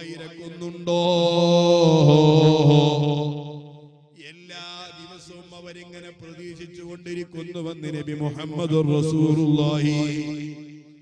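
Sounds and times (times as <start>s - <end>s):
man chanting long note: 0.0s - 3.7s, 7.3s - 10.7s.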